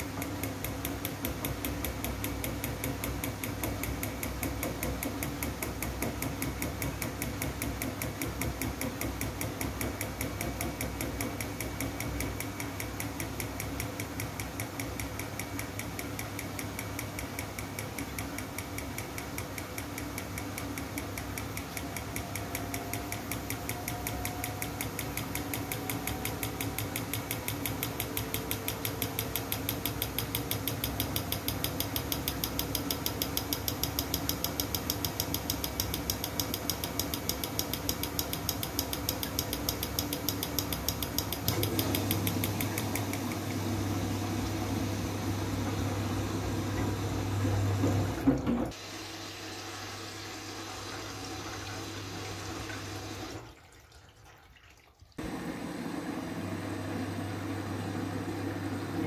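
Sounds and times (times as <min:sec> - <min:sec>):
washing machine drum clicking: 0:00.0 - 0:48.8
low motor hum: 0:40.6 - 0:48.8.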